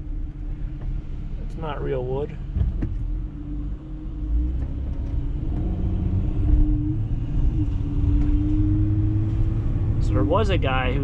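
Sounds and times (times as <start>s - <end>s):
road rumble: 0.0s - 11.0s
van engine hum: 0.0s - 11.0s.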